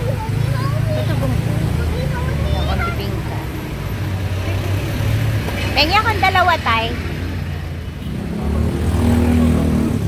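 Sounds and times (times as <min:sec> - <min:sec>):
road noise: 0:00.0 - 0:10.0
vehicle engine humming: 0:00.0 - 0:10.0.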